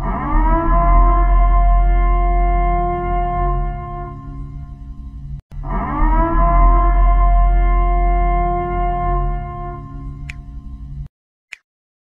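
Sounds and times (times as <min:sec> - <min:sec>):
deep bass drone: 0:00.0 - 0:11.1
sustained electronic chord: 0:00.0 - 0:11.1.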